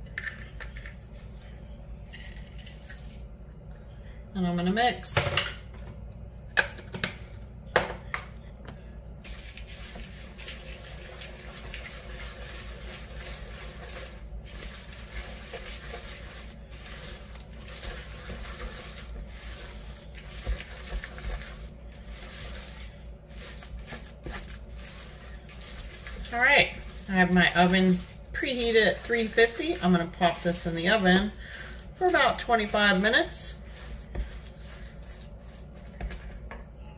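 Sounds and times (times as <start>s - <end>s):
spoon scraping through oats: 9.3s - 36.5s.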